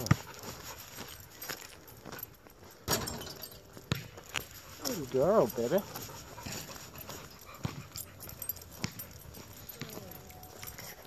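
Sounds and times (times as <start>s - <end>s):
footsteps on asphalt: 3.8s - 11.0s.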